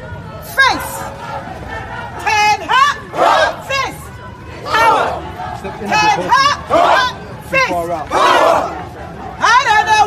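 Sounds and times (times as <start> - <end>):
crowd shouting a protest chant: 0.0 - 10.0.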